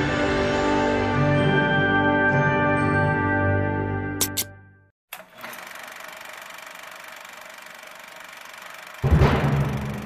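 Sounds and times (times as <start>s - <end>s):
film projector whirring and clicking: 5.1s - 10.0s.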